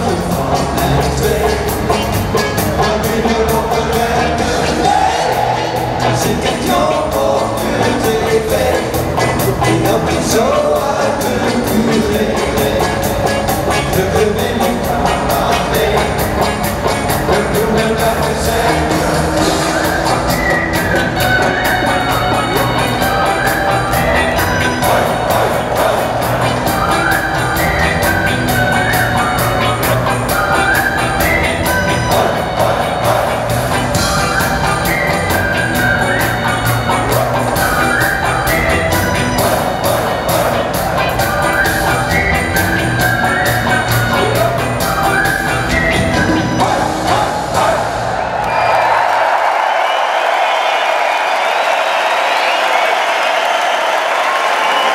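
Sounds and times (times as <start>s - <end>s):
live rock band playing: 0.0s - 48.3s
crowd cheering and applauding: 3.9s - 54.9s.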